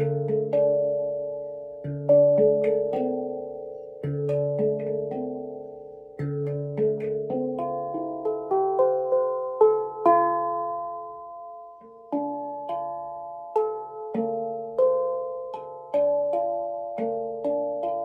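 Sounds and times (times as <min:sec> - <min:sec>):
handpan notes ringing: 0:00.0 - 0:18.0.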